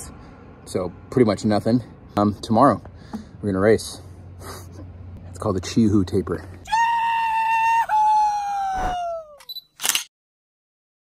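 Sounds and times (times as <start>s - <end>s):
man yelling: 6.6s - 9.4s.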